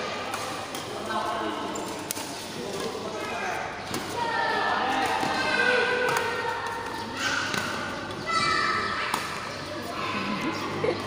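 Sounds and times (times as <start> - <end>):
rackets hitting shuttlecock: 0.1 - 1.0, 4.9 - 9.6.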